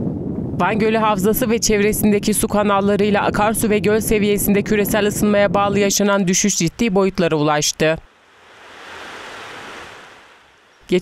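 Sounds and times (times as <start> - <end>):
soft outdoor rush: 0.0 - 11.0.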